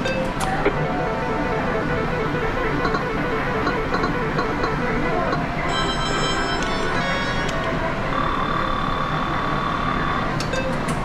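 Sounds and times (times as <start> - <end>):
slot machine jingle: 0.0 - 10.0
steady electronic tone: 0.0 - 10.4
game centre din: 0.0 - 10.7.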